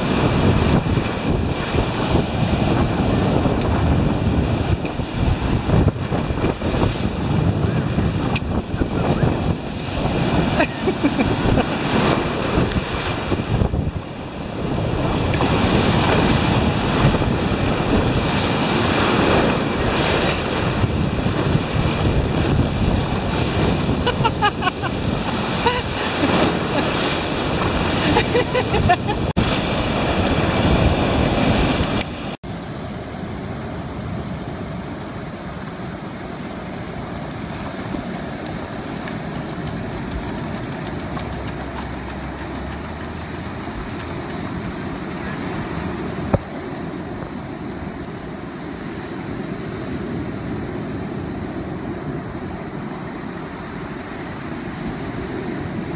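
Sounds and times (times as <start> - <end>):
wind buffeting microphone: 0.0 - 32.4, 33.3 - 55.9
ocean surf breaking: 0.0 - 55.9.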